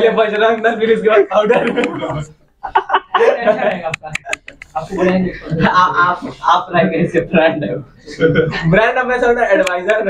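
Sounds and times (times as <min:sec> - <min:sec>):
man chuckling: 0:01.4 - 0:04.4.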